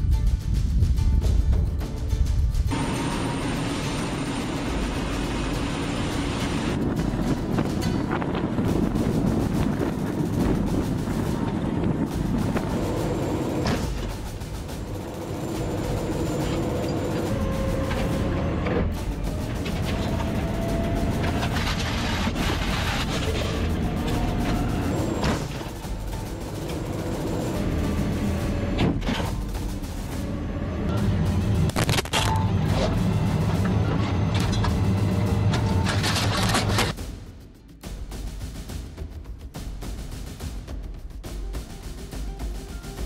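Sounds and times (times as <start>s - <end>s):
tank engine running: 2.3s - 37.0s
track noise: 2.6s - 37.0s.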